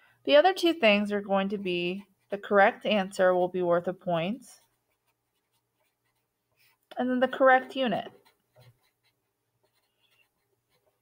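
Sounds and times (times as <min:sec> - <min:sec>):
marker scratching on paper: 0:04.1 - 0:06.9, 0:07.5 - 0:11.0.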